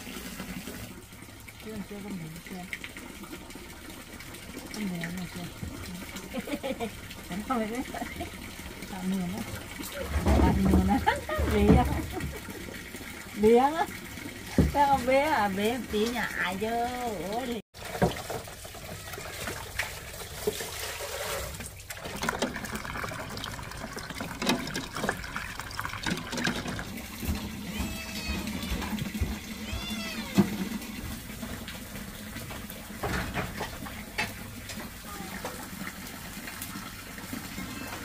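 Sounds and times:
water running into plastic basin: 0.0 - 38.0
cat meowing: 29.6 - 30.5.

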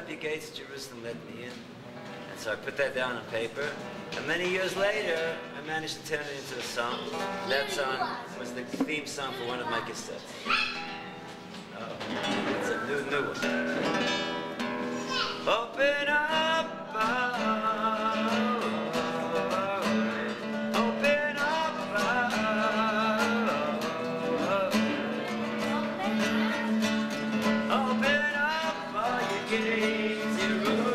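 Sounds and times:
acoustic guitar: 0.0 - 30.9
person singing with vibrato: 14.9 - 30.9.

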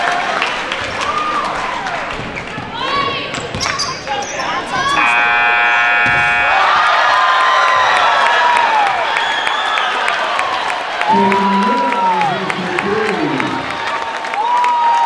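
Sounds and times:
spectators shouting and cheering: 0.0 - 15.0
scoreboard buzzer: 5.0 - 7.1
basketball bouncing on hardwood: 6.0 - 6.3.

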